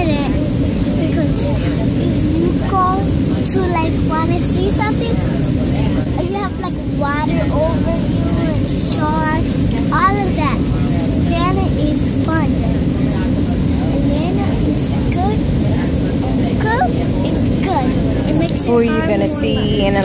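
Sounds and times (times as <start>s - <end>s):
airliner cabin rumble: 0.0s - 20.0s
child's sing-song voice: 1.0s - 5.3s, 6.1s - 10.6s, 11.2s - 12.7s, 13.9s - 15.5s, 16.4s - 18.9s.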